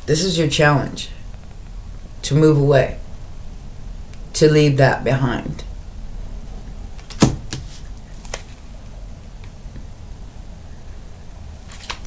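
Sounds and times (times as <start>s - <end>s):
low room hum: 0.0s - 12.0s
cards being shuffled by hand: 7.0s - 8.6s.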